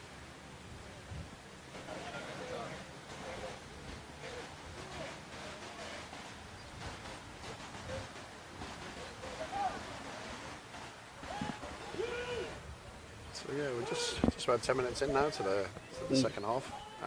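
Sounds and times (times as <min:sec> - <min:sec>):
steady background hiss: 0:00.0 - 0:17.0
distant player voices and calls: 0:00.8 - 0:17.0.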